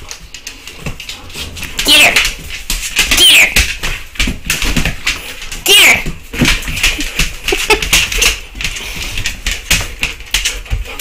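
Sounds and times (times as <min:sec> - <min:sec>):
dog claws clicking on tiles: 0:00.0 - 0:11.0
dog squealing: 0:03.2 - 0:03.6.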